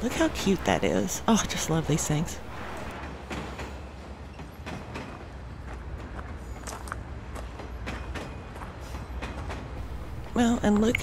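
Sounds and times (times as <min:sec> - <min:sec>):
steady low rumble: 0:09.8 - 0:11.0.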